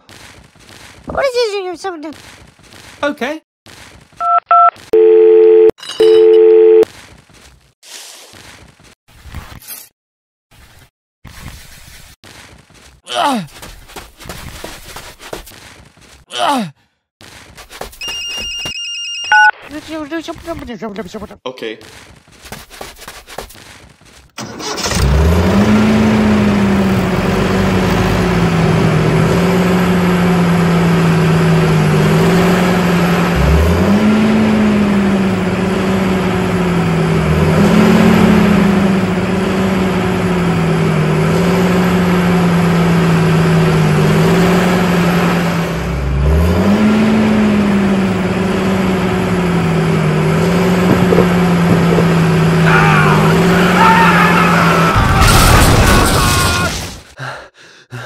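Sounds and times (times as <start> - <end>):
tractor engine revving: 24.4 - 54.9.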